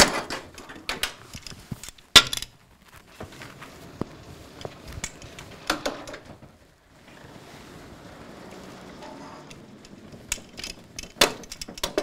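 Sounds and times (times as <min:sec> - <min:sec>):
blackboard panel sliding rumble: 0:03.2 - 0:12.0.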